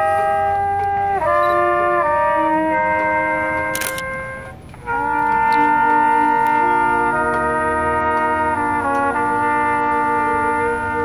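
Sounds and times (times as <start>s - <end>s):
brass band chord: 0.0s - 11.0s.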